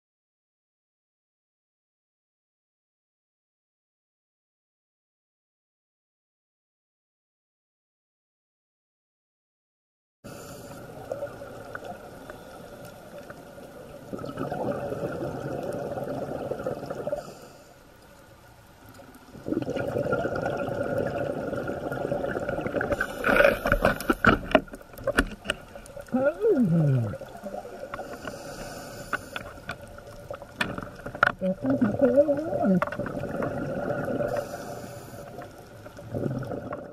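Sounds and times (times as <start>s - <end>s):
muffled underwater noise: 10.3s - 36.9s
faint clicks: 27.2s - 31.5s.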